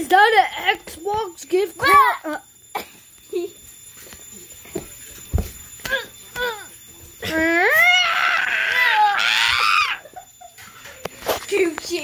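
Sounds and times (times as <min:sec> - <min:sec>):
child squealing excitedly: 0:07.3 - 0:10.1.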